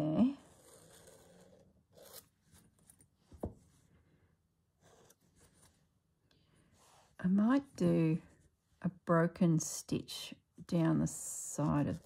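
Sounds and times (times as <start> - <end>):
pen scratching on fabric: 0.2 - 3.1, 4.8 - 5.8.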